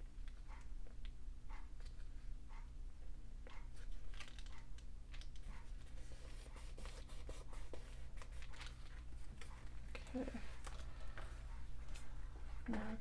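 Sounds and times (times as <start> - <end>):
paper clicks taps and rustles: 3.8 - 7.0.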